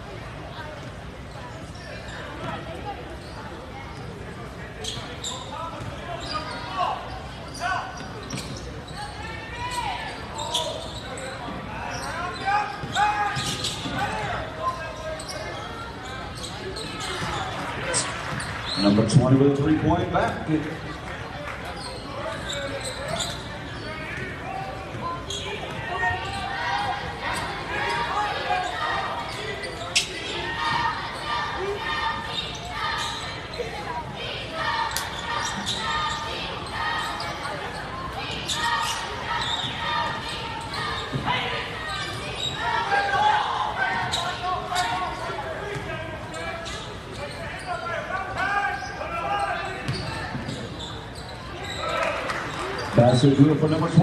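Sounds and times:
spectators talking: 0.0s - 54.0s.

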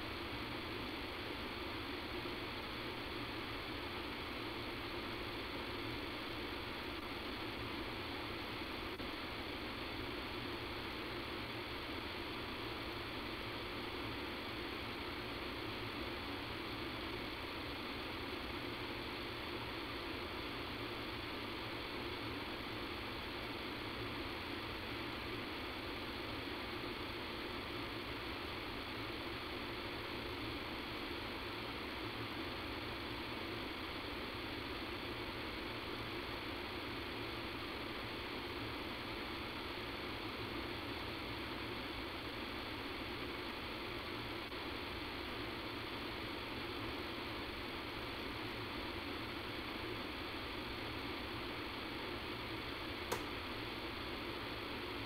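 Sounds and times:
steady hiss with low rumble: 0.0s - 55.0s.

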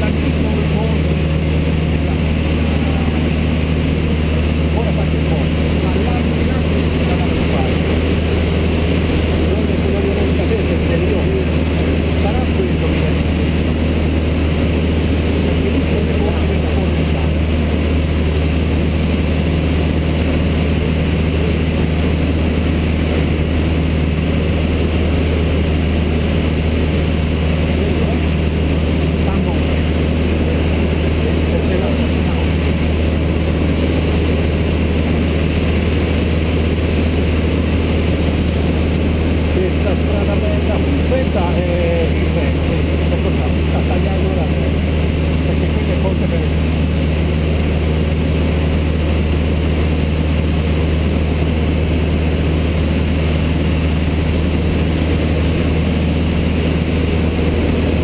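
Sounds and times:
propeller plane engine droning: 0.0s - 58.0s.

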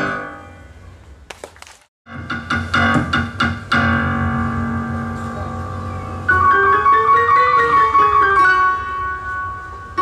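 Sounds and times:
solo piano playing: 2.2s - 10.0s.

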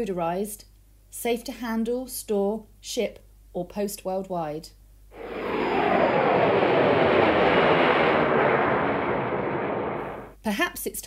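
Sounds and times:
model jet turbine whine passing: 5.2s - 10.4s.

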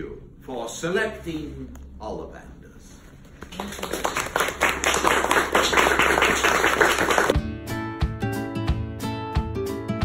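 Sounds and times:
audience clapping: 3.4s - 7.4s.

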